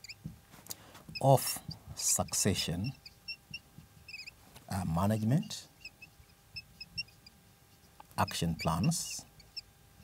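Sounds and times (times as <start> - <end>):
marker pen squeaking on board: 0.0 - 0.3, 1.1 - 4.4, 5.0 - 9.7.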